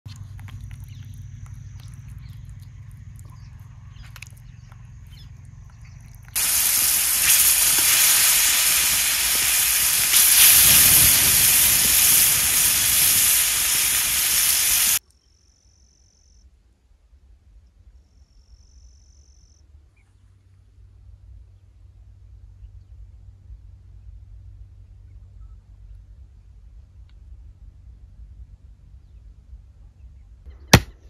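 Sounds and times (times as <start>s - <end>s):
high insect trill: 0.7s - 16.4s
fish sizzling in hot oil: 6.4s - 15.0s.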